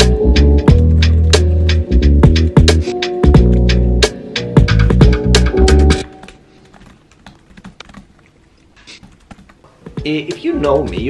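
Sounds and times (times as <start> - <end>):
background music: 0.0 - 6.7, 9.6 - 11.0
laptop keyboard clicks: 6.0 - 9.6.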